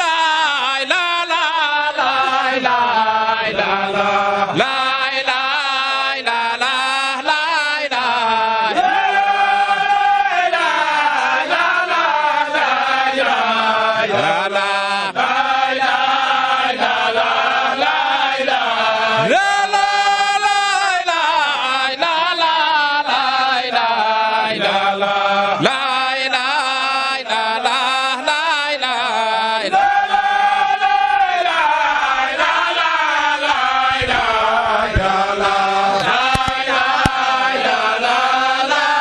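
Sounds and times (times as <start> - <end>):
men chanting devotional chant: 0.0 - 39.0.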